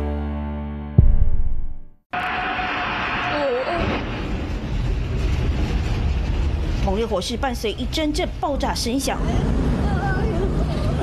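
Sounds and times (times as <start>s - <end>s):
low rumble of large fire: 2.4s - 11.0s.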